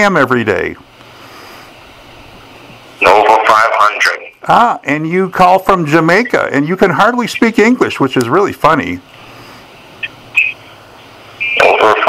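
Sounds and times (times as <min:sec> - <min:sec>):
telephone line hiss: 0:09.8 - 0:12.0.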